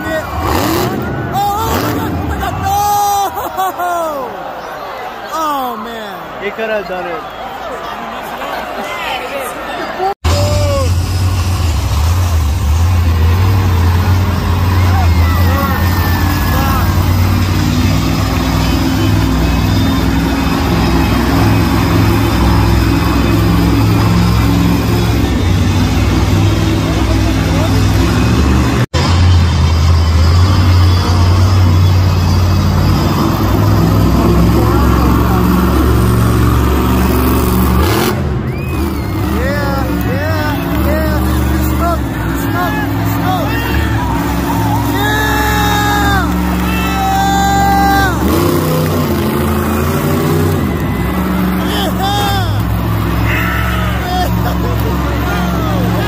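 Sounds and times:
monster truck engine revving: 0:00.0 - 0:03.1, 0:10.2 - 0:56.0
crowd: 0:00.0 - 0:56.0.

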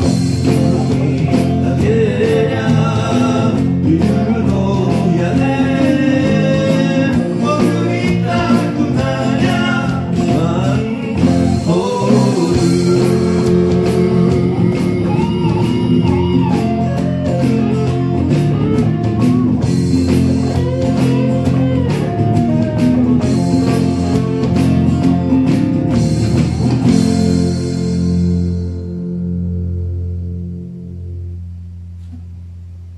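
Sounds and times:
band instrumental music: 0:00.0 - 0:32.3.

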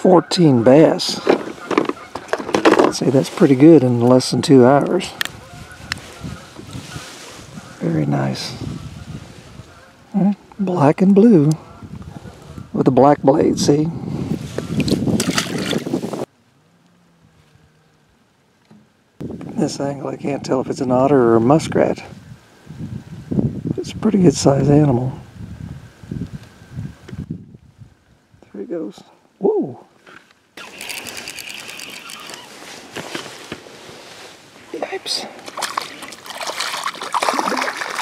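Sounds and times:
wind rushing over microphone: 0:02.2 - 0:10.2, 0:10.9 - 0:16.3, 0:19.2 - 0:28.5
fishing reel clicking and whining: 0:30.6 - 0:32.5.

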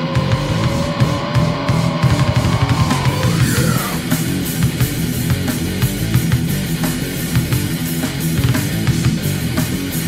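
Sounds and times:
distorted electric guitar riff: 0:00.0 - 0:10.0
drum kit hits: 0:00.1 - 0:10.0.

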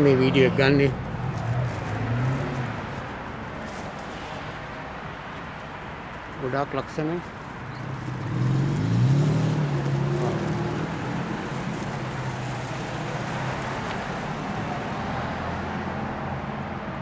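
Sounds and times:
steady road hum: 0:00.0 - 0:17.0
car engine speeding up: 0:08.1 - 0:11.5.

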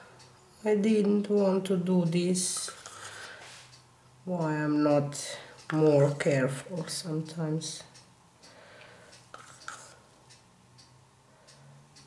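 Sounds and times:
craft stick tapping wet paint: 0:09.4 - 0:09.9.

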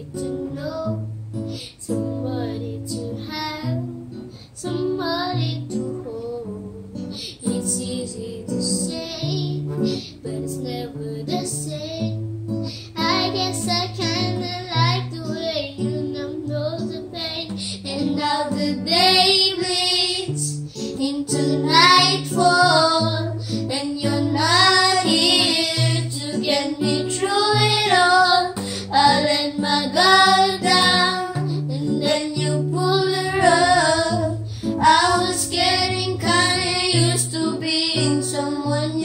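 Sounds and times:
acoustic guitar: 0:00.0 - 0:39.0
girl singing: 0:00.0 - 0:39.0.

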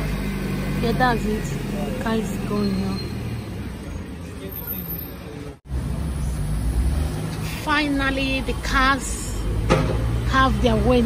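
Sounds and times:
truck engine pulling away: 0:00.0 - 0:07.6.

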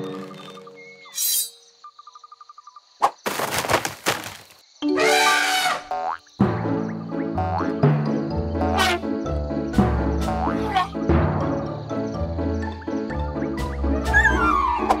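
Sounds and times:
children's cartoon music: 0:04.8 - 0:15.0.

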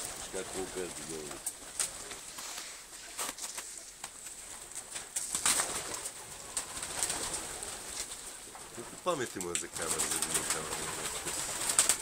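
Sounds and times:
pigeons cooing: 0:03.9 - 0:12.0.

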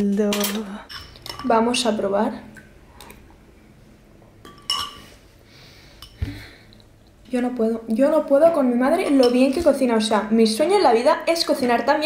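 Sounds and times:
metal spoon clinking on bowl: 0:04.4 - 0:05.0, 0:09.0 - 0:09.7.

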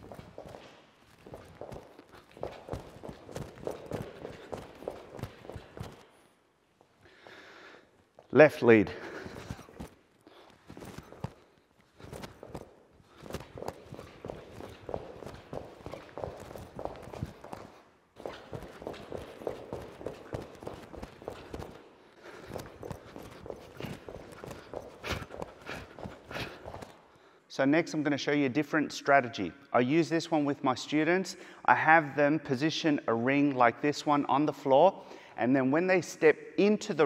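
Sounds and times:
sneaker footfalls on rubber mat: 0:00.0 - 0:06.0, 0:12.0 - 0:21.8, 0:22.4 - 0:27.0.

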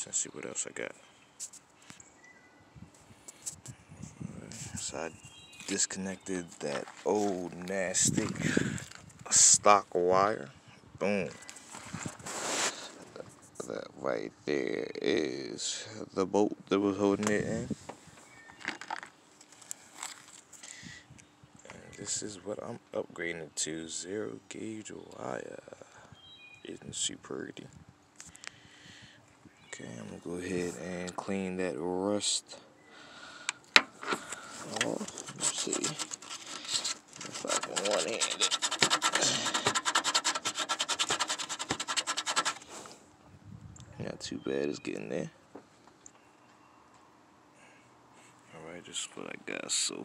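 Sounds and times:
rustling handling noises: 0:03.0 - 0:09.2, 0:11.3 - 0:13.7, 0:17.2 - 0:20.8, 0:33.7 - 0:43.0
scrubbing rust off sheet metal: 0:33.8 - 0:42.9.

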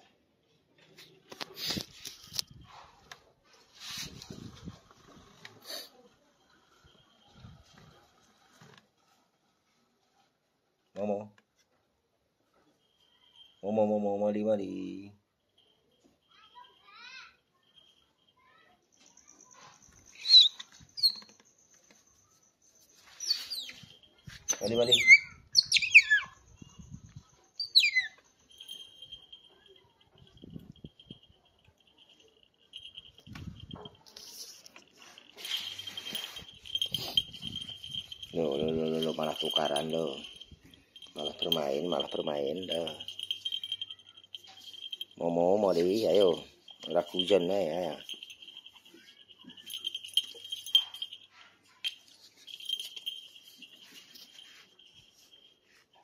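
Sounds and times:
otter squeaky chirp: 0:20.1 - 0:21.4, 0:23.1 - 0:27.0, 0:27.6 - 0:28.3
sharp clicks and clinks: 0:27.6 - 0:55.5.

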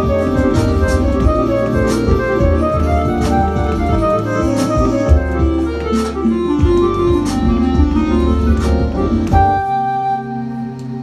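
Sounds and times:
backing track with bass and beat: 0:00.0 - 0:11.0
electronic flute melody: 0:00.0 - 0:11.0.

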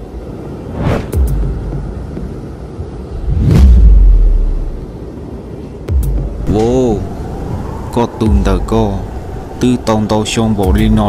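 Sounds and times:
deep rumbling swell: 0:03.1 - 0:04.9, 0:06.2 - 0:11.0.

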